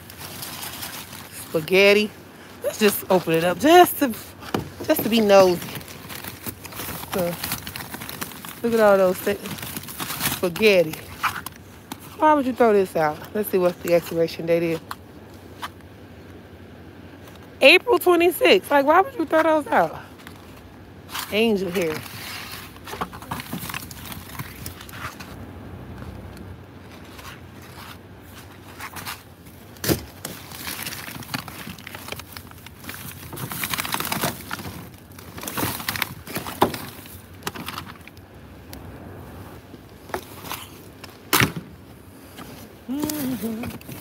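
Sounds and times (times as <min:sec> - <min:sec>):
plastic garbage bags rustling: 0:00.0 - 0:14.8, 0:19.0 - 0:25.4, 0:26.7 - 0:38.4, 0:39.5 - 0:44.0.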